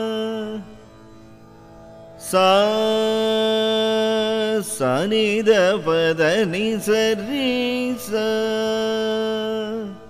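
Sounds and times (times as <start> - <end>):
man singing long notes: 2.2 - 10.0.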